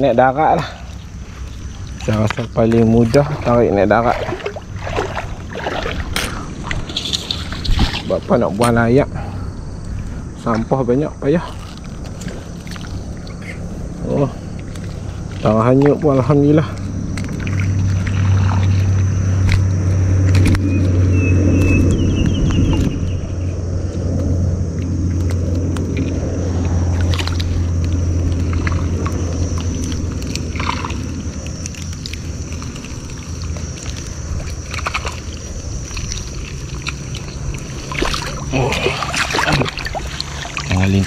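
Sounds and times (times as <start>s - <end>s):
faint high whine: 0.0s - 41.0s
steady low hum: 0.0s - 41.0s
water sloshing and splashing: 0.0s - 41.0s.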